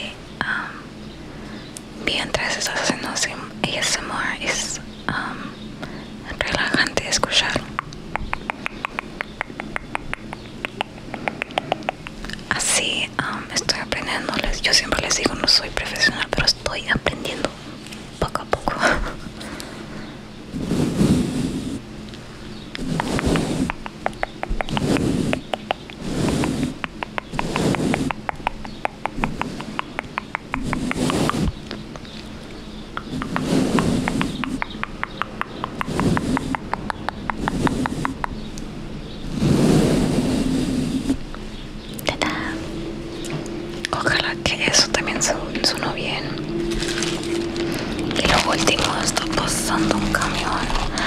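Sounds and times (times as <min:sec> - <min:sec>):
brush scratching microphone: 0:22.8 - 0:32.1, 0:33.0 - 0:38.3, 0:44.0 - 0:51.0.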